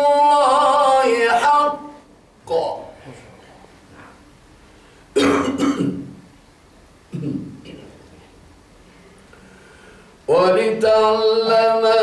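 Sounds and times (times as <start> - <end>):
man clearing his throat: 5.2 - 6.1, 7.1 - 7.9.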